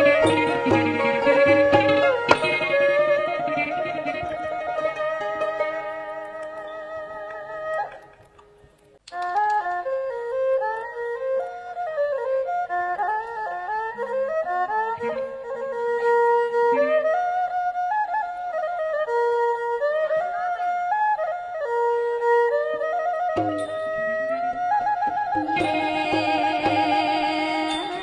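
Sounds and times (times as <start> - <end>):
traditional ensemble playing: 0.0 - 28.0.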